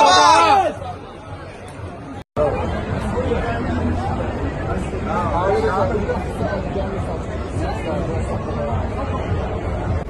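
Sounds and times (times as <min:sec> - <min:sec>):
group of people chattering: 0:00.0 - 0:10.0.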